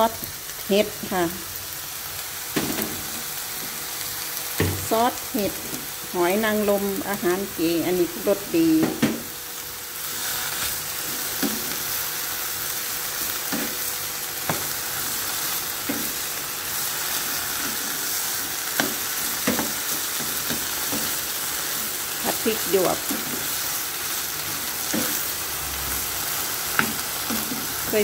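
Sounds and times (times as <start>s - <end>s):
food sizzling in a pan: 0.0s - 28.0s.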